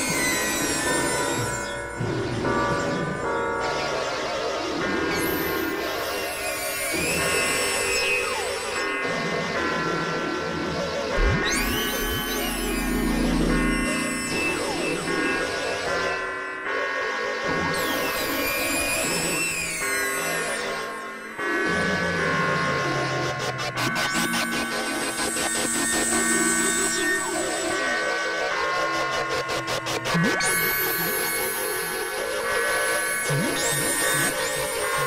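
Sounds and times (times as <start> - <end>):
buzzing synthesizer tones: 11.1 - 16.2
high tones sweeping down: 11.2 - 15.6.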